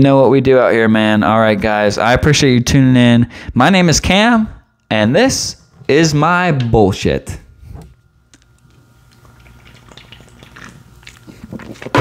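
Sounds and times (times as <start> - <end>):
person gulping swallowing: 9.1 - 12.0.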